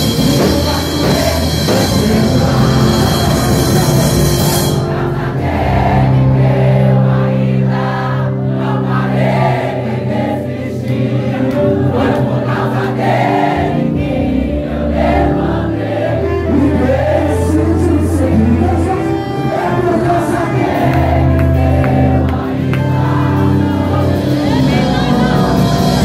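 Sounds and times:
man singing into a microphone: 0:00.0 - 0:04.5, 0:16.2 - 0:21.3
group voices singing along: 0:00.0 - 0:26.0
keyboard chords: 0:00.0 - 0:26.0
electric guitars: 0:15.5 - 0:26.0.

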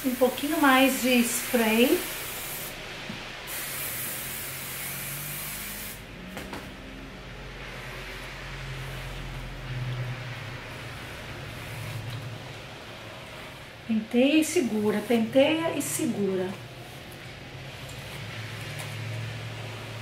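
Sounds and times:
aerosol hairspray hissing: 0:00.0 - 0:06.0, 0:13.4 - 0:16.7
brush rustling through hair: 0:07.6 - 0:20.0.

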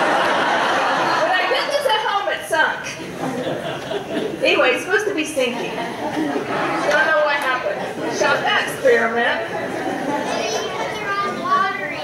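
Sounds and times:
children chattering: 0:05.6 - 0:12.0
high child's voice: 0:10.3 - 0:12.0.

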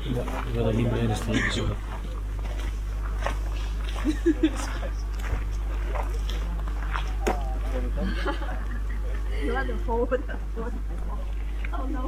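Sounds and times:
people chatting outdoors: 0:00.0 - 0:12.0
steady low rumble: 0:00.0 - 0:12.0.

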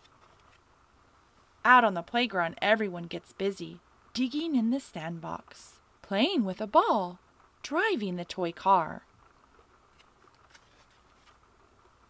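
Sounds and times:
book page turning: 0:00.0 - 0:00.7, 0:09.4 - 0:11.6.

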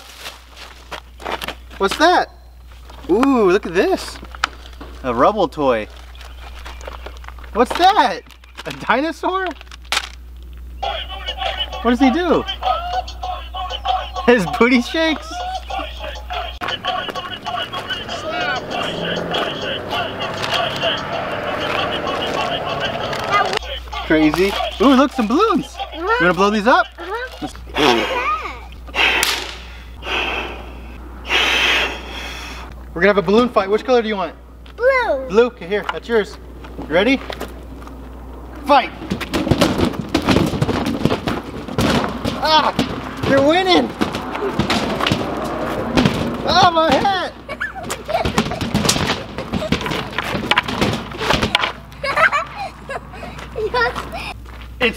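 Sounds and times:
feet scuffing on gravel: 0:00.0 - 0:01.8
toy playing a song with singing: 0:10.8 - 0:27.4
hollow thuds of batted balloons: 0:39.0 - 0:47.1, 0:47.8 - 0:51.8.

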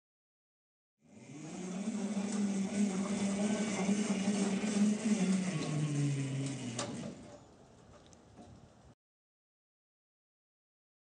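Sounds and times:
electric motor humming: 0:01.1 - 0:07.4.

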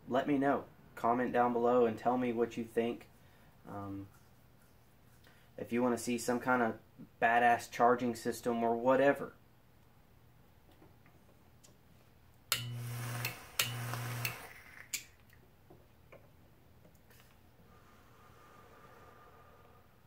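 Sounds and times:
electrical buzz: 0:12.6 - 0:14.6.

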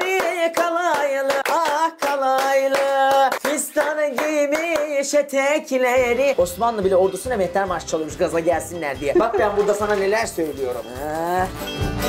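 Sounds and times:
hand clapping: 0:00.0 - 0:05.2, 0:09.2 - 0:11.9.

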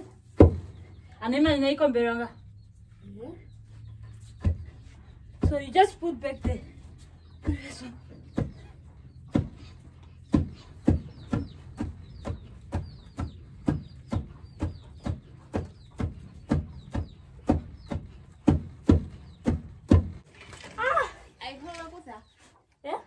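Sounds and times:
wooden pestles pounding grain: 0:04.4 - 0:20.3.

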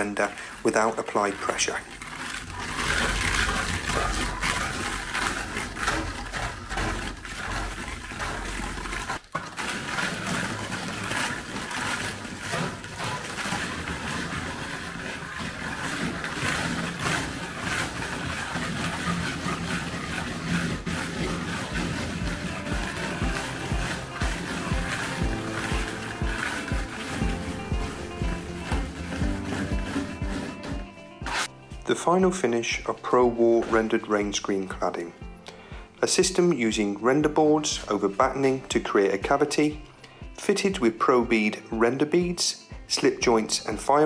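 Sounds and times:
plastic float scraping wet render: 0:00.0 - 0:44.0.

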